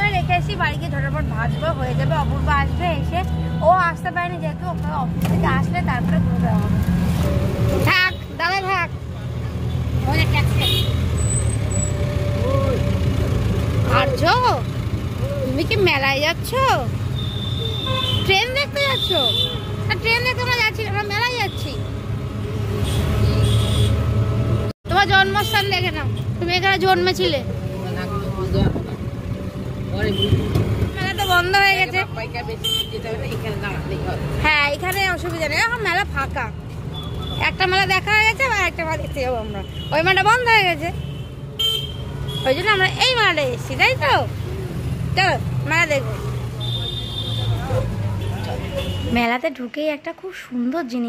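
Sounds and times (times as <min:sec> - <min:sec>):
road and traffic rumble: 0:00.0 - 0:51.0.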